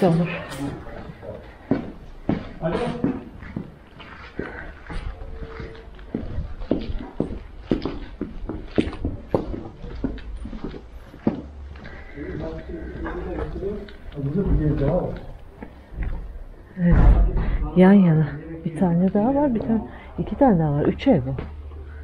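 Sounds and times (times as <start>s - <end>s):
footsteps on hard paving: 0.0s - 16.6s, 19.0s - 22.0s.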